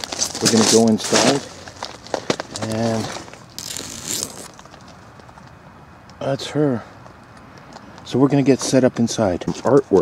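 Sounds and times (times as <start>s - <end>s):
tent fabric rustling: 0.0s - 4.6s.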